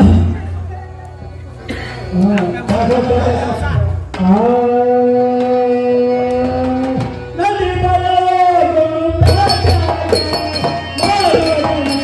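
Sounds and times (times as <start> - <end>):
man singing a long note: 4.2 - 12.0.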